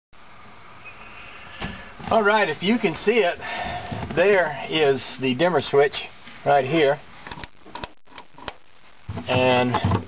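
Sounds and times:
faint background hiss: 0.2 - 10.0.

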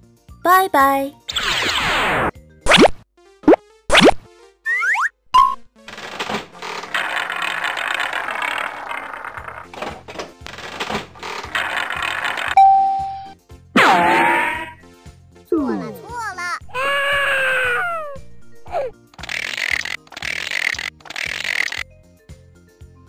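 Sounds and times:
children's music: 0.3 - 1.2, 15.5 - 18.9
cartoon springy boings: 1.3 - 5.7, 11.4 - 14.8
cartoon prize wheel spinning: 5.9 - 13.4, 19.1 - 21.8.

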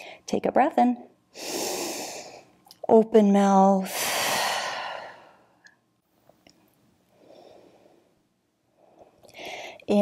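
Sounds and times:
woman's voice: 2.9 - 3.9
woman's deep in-breath: 3.9 - 5.5, 9.3 - 9.9.

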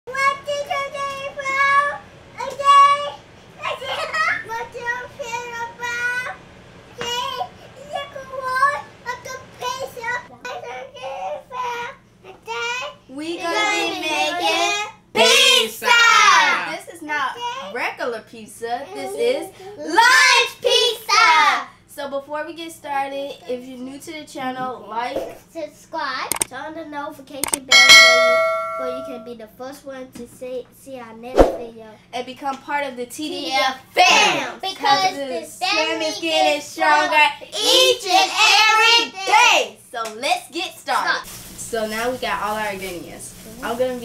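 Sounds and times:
bright metallic ding: 27.4 - 29.3.

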